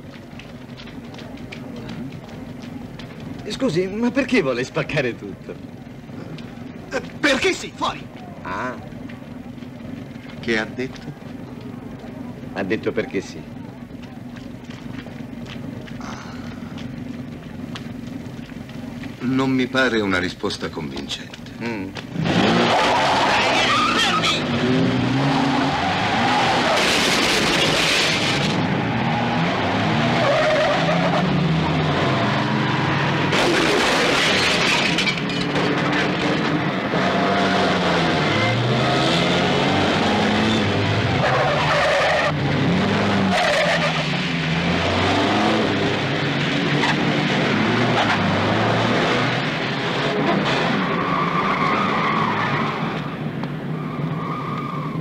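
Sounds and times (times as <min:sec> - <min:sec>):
car engines revving: 0:00.0 - 0:55.0
tyres skidding: 0:00.0 - 0:55.0.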